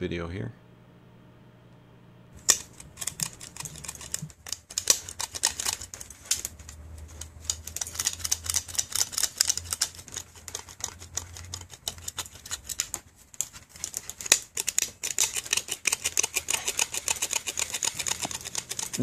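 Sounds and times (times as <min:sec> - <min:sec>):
low hum: 0:00.0 - 0:04.3.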